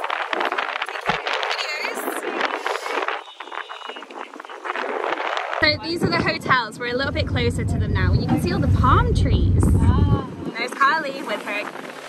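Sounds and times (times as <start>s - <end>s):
rushing wind: 0.0s - 12.0s
water rushing past boat: 0.0s - 12.0s.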